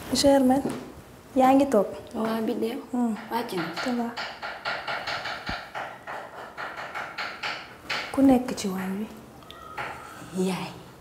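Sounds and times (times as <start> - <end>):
fast rhythmic taps: 3.1 - 9.2.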